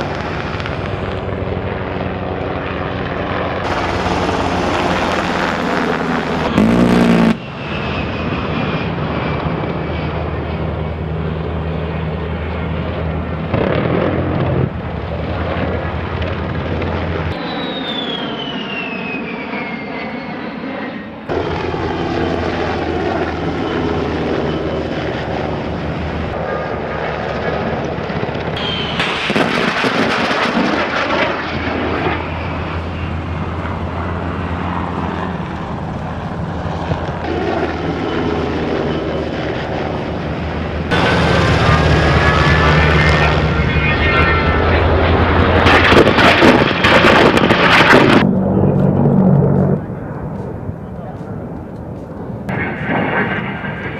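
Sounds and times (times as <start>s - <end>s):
jet engines whining: 0.0s - 53.9s.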